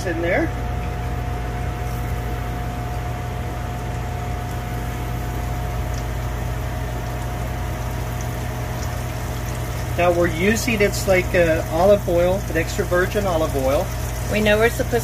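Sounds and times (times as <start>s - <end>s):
chicken frying in hot oil: 0.0s - 15.0s
stove fan humming: 0.0s - 15.0s.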